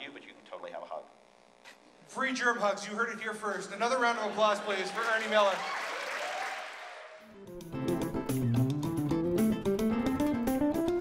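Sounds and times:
audience applause: 0:04.0 - 0:07.3
strummed guitar music: 0:07.4 - 0:11.0.

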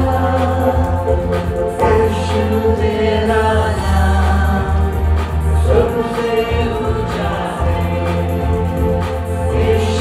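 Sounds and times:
low bass: 0:00.0 - 0:10.0
voices singing a worship song: 0:00.0 - 0:10.0.

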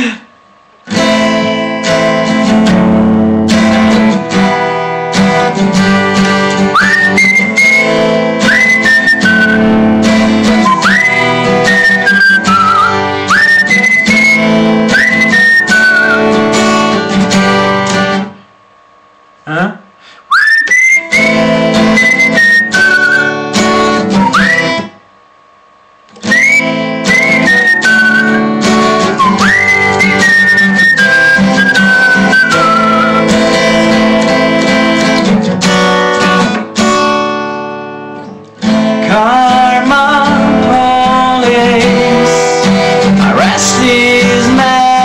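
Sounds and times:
acoustic guitar strumming: 0:00.0 - 0:18.5, 0:20.0 - 0:25.1, 0:26.1 - 0:45.0
man whistling: 0:06.6 - 0:16.6, 0:20.2 - 0:25.0, 0:26.2 - 0:34.1.

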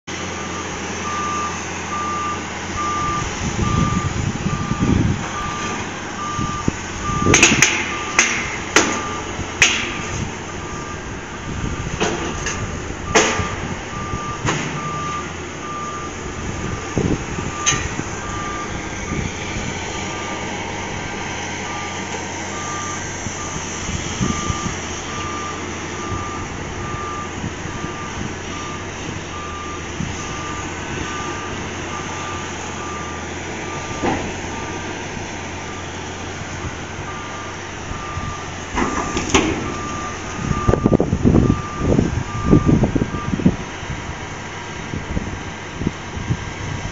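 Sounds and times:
excavator engine running: 0:00.0 - 0:46.9
warning alarm beeping: 0:00.4 - 0:08.2, 0:08.8 - 0:20.5, 0:21.6 - 0:34.9, 0:37.1 - 0:43.4.

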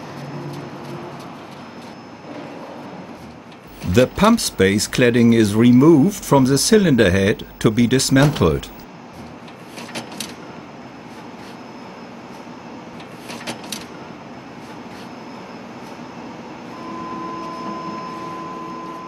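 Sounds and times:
workshop background noise: 0:03.1 - 0:10.3
two-tone hum: 0:03.7 - 0:08.8, 0:16.7 - 0:19.0.

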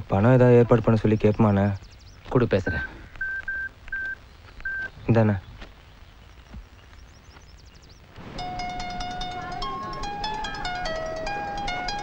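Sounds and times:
phone keypad beeps: 0:02.7 - 0:04.9.

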